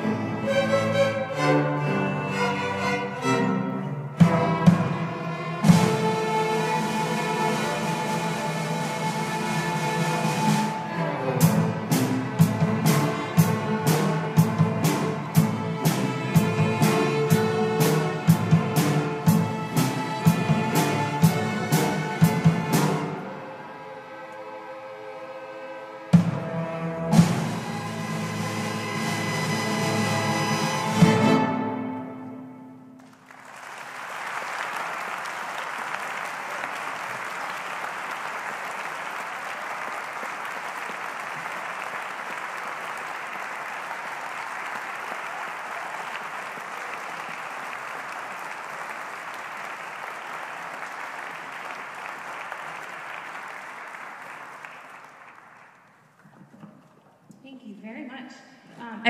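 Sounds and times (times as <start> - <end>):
string orchestra playing chords: 0.0 - 33.1.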